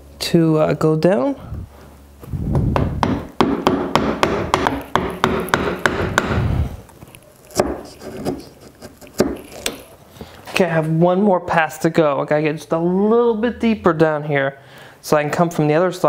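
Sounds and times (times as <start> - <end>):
wooden mallet striking chisel: 2.8 - 6.5, 7.5 - 9.8.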